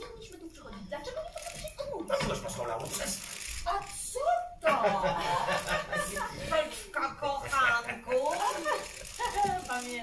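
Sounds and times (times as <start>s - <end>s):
people chuckling and laughing: 4.6s - 9.8s.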